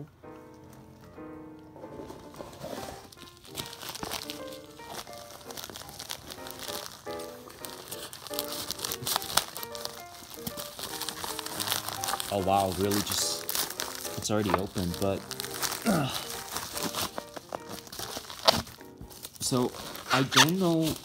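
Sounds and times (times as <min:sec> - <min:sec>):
background music: 0:00.0 - 0:21.0
padded envelope crinkling: 0:02.0 - 0:21.0.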